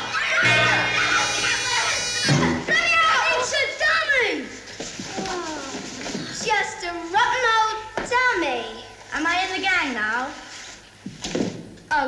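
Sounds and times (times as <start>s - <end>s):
children talking: 0.0s - 10.3s.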